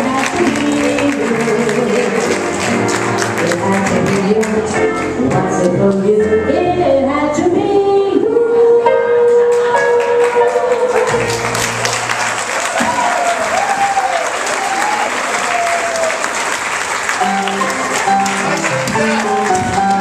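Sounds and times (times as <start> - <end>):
crowd applauding: 0.0 - 4.8, 9.9 - 20.0
music: 0.0 - 13.2, 17.0 - 20.0.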